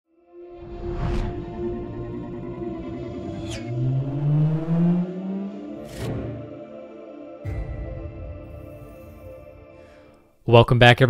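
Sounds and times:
rising low tone: 0.5s - 9.8s.

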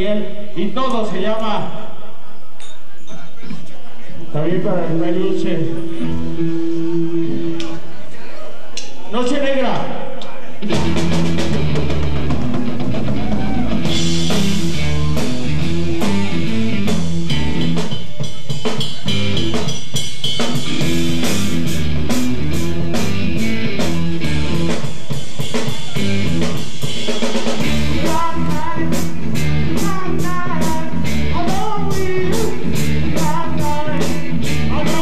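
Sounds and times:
bass line: 10.6s - 35.0s
drum kit: 10.6s - 35.0s
electric guitars: 10.6s - 35.0s.

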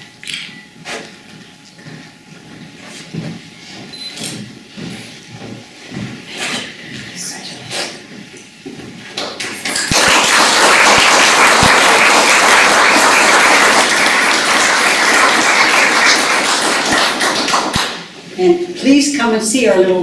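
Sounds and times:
audience applauding: 9.2s - 18.0s.

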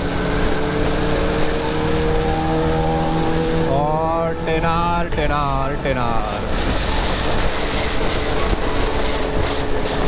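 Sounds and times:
motorcycle engine cruising: 0.0s - 5.2s, 6.4s - 10.0s.

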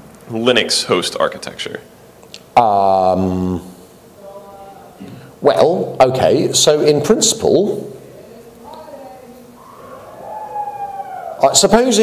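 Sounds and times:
man speaking: 2.5s - 8.0s, 11.4s - 12.0s.

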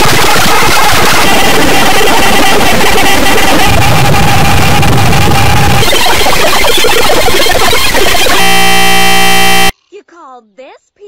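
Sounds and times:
harsh buzzing tone: 0.0s - 9.7s
loud clipped noise blast: 0.0s - 9.7s.

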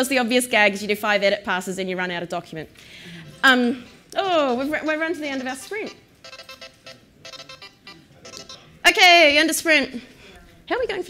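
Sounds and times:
electronic alarm chime: 5.4s - 8.7s.

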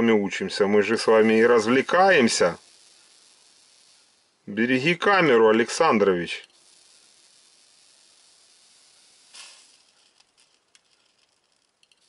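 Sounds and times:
faint steady hiss: 0.0s - 12.0s
transformer sizzling and crackling: 0.0s - 12.0s
faint ticks: 6.4s - 12.0s.

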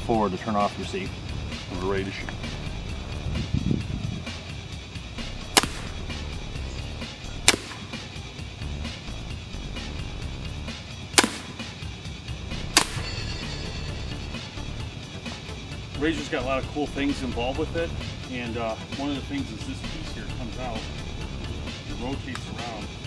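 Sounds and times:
background music: 0.0s - 23.0s.

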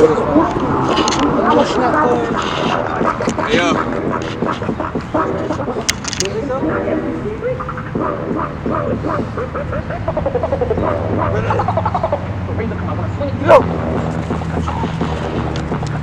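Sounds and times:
people calling out and talking: 0.0s - 16.0s.

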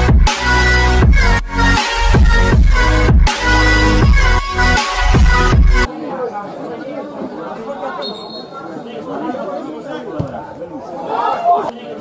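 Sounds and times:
indistinct chatter of voices: 5.8s - 12.0s.

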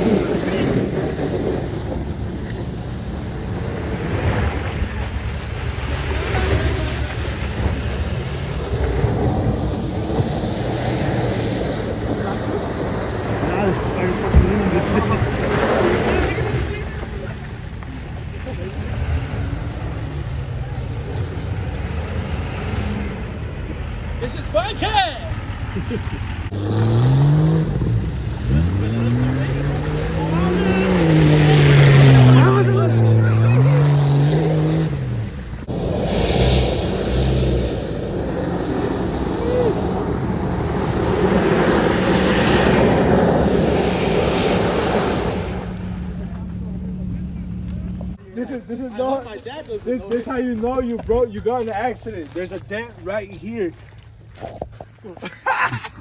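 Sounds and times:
rush of driving noise: 0.0s - 56.0s
vehicle engine revving hard: 25.3s - 48.2s.

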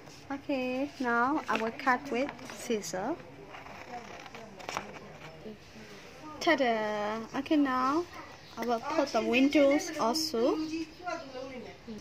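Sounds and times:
scissors cutting paper: 1.5s - 5.5s.

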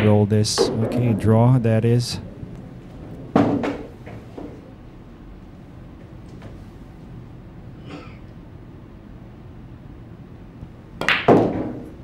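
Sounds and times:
pool ball knocking in pocket: 0.0s - 1.5s, 3.0s - 4.6s, 11.0s - 11.9s.

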